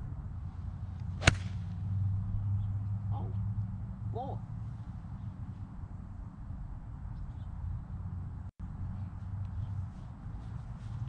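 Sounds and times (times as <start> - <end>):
golf club striking ball: 1.0 - 1.8.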